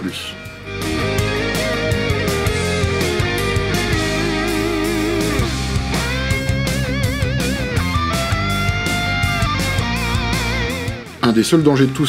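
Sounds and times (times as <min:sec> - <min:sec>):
bass: 0:00.0 - 0:12.0
electric guitar with vibrato: 0:00.4 - 0:11.2
steady drum beat: 0:00.7 - 0:11.3.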